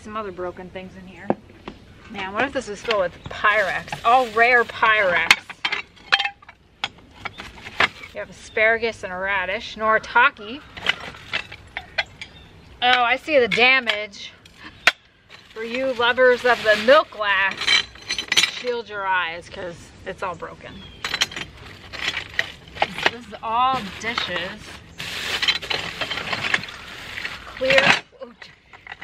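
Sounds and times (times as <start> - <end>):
plastic bags rustling: 3.4 - 5.2, 10.7 - 11.7, 15.3 - 18.6, 21.0 - 28.1.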